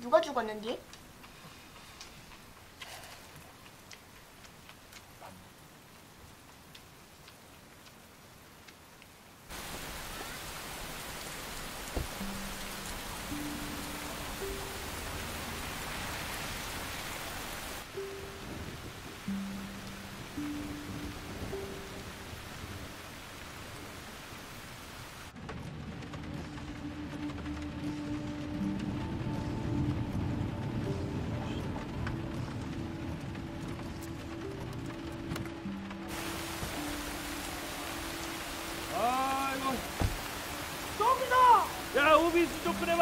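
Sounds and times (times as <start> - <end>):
steady rain: 0.0 - 43.0
slow low film score notes: 0.8 - 24.7, 25.3 - 41.0.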